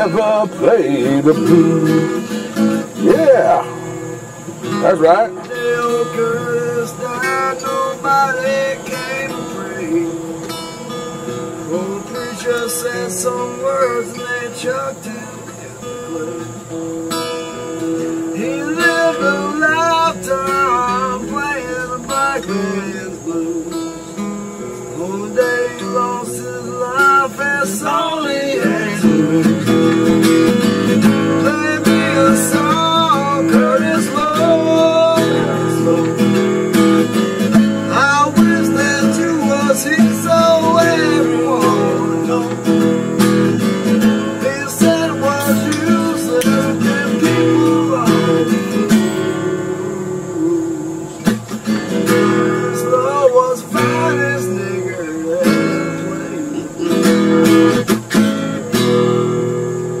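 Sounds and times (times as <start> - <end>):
acoustic guitar strummed and picked: 0.0 - 60.0.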